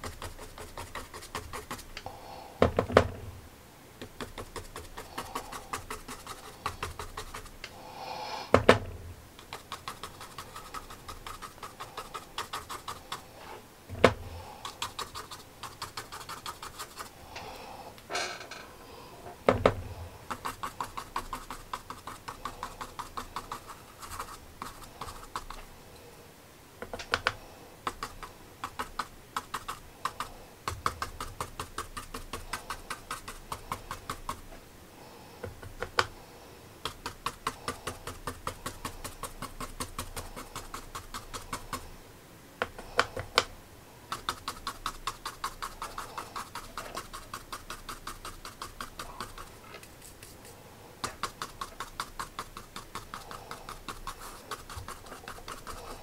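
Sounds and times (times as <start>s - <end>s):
paintbrush tapping on paper: 2.6s - 3.2s, 4.0s - 7.6s, 8.5s - 13.2s, 19.5s - 25.6s, 26.8s - 34.5s, 35.4s - 36.1s, 36.8s - 41.9s, 42.6s - 43.5s, 44.1s - 49.5s, 51.0s - 56.0s.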